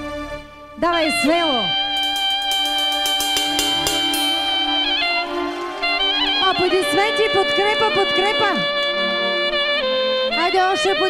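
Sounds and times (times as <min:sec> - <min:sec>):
strummed guitar strokes: 0:01.2 - 0:10.0.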